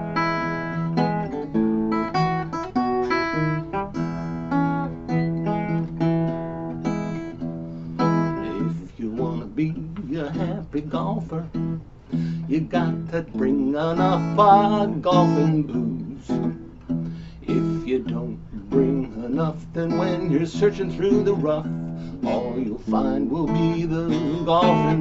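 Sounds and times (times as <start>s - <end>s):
acoustic blues guitar: 0.0s - 25.0s.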